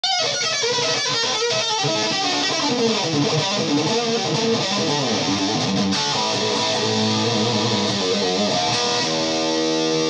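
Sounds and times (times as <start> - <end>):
electric guitar lead run: 0.0 - 10.0.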